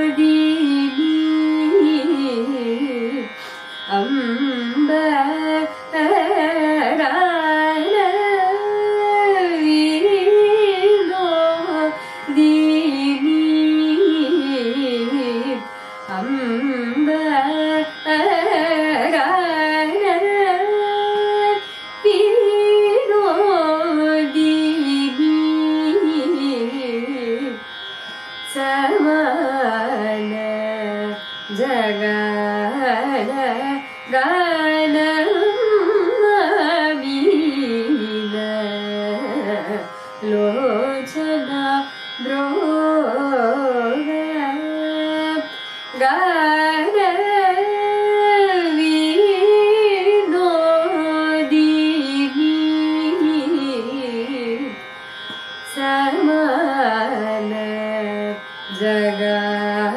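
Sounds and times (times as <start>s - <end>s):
woman singing: 0.0s - 27.6s, 28.5s - 54.8s, 55.6s - 59.9s.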